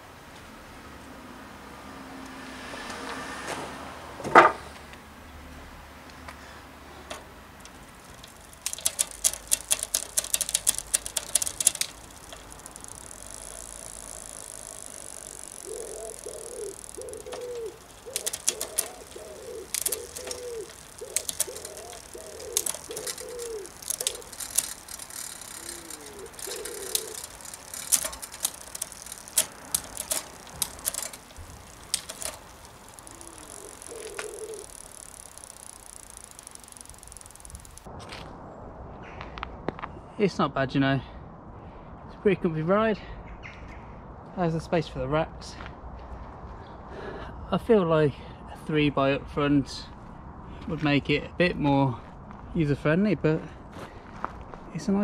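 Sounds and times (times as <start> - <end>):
bicycle chain and ratchet clicking: 6.9 - 37.9.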